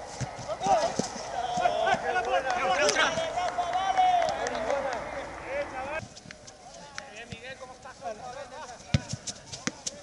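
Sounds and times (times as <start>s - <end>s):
players shouting: 0.0s - 6.0s.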